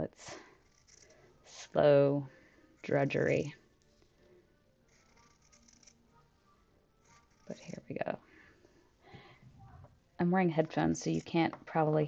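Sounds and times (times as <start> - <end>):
scissors cutting fabric: 0.6 - 1.3, 4.9 - 6.1, 7.0 - 7.8, 10.7 - 11.5.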